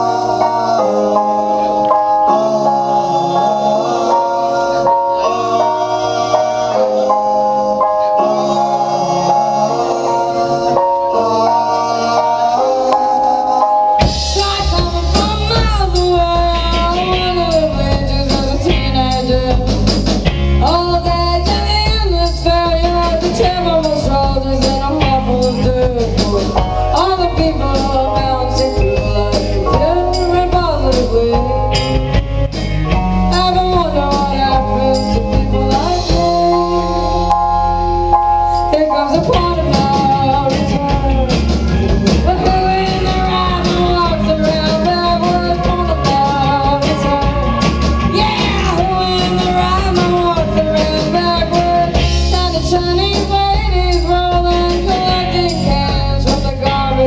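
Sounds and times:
live rock band playing: 0:00.0 - 0:57.0
woman singing: 0:14.0 - 0:19.9, 0:20.6 - 0:31.9, 0:33.2 - 0:37.5, 0:38.6 - 0:57.0.

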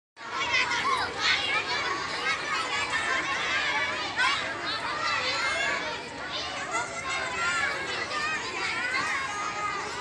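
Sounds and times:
children chattering and calling out: 0:00.2 - 0:10.0.

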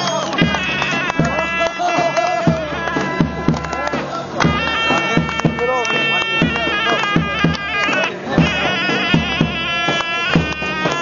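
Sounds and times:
reedy wind instrument melody: 0:00.0 - 0:11.0
deep drum beats: 0:00.2 - 0:11.0.

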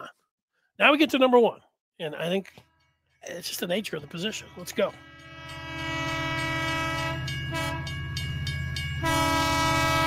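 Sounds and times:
moving train rumble and clatter: 0:03.2 - 0:10.0
train horn: 0:04.8 - 0:08.0, 0:09.0 - 0:10.0.

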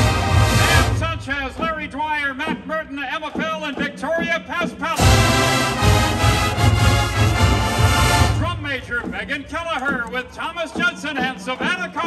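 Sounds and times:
brass band fanfare chord: 0:00.0 - 0:01.0, 0:05.0 - 0:08.4
announcer over loudspeakers: 0:00.1 - 0:02.1.

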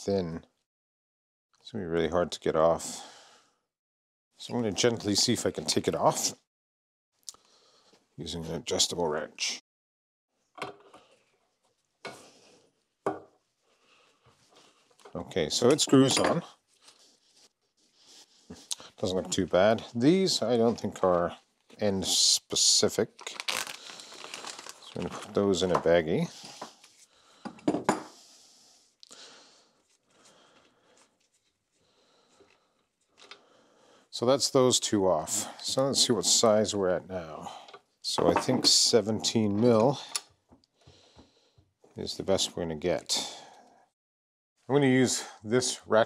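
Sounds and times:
plastic bag rustle: 0:23.2 - 0:25.4.

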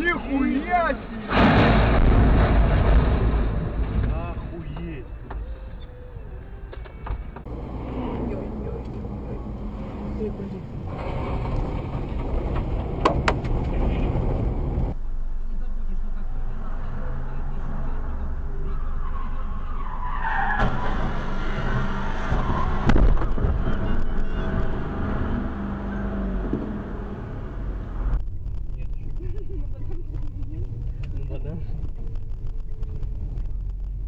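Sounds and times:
car engine and road rumble: 0:00.0 - 0:34.0.

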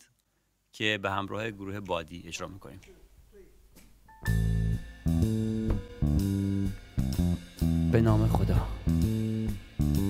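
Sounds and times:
live rock band playing: 0:04.3 - 0:08.0.

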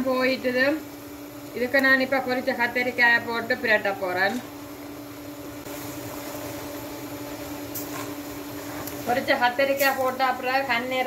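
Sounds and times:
fan motor hum with hiss: 0:00.0 - 0:11.0.

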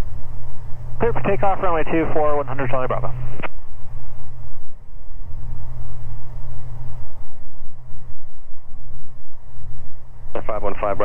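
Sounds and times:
propeller plane engines droning: 0:00.0 - 0:11.0.

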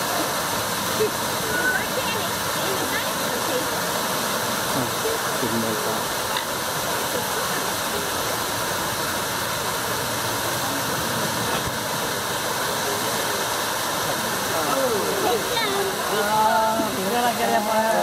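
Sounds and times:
people talking: 0:00.0 - 0:18.0.

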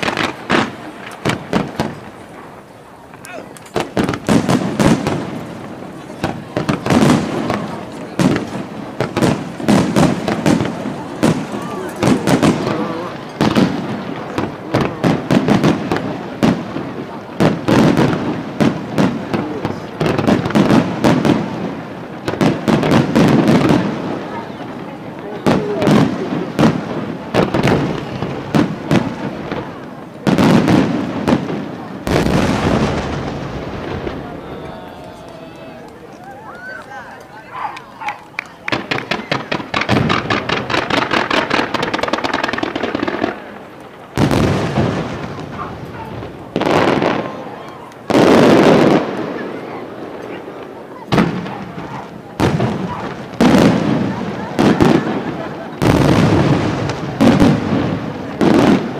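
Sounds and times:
fireworks bangs and crackles: 0:00.0 - 0:58.9.

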